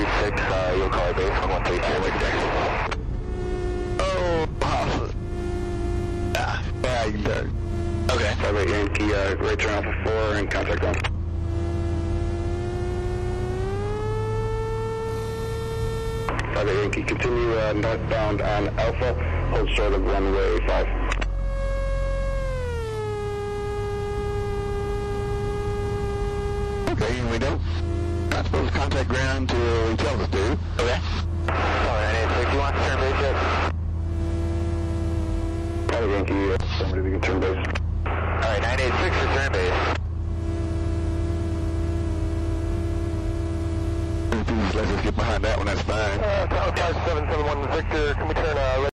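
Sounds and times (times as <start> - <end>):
radio chatter: 0.0 - 3.0, 4.0 - 5.2, 6.3 - 11.2, 16.2 - 21.3, 26.8 - 33.7, 35.9 - 40.0, 44.3 - 48.9
thin whine: 0.0 - 48.1
aircraft cockpit low drone: 0.0 - 48.9
radio hiss and hum: 0.0 - 48.9.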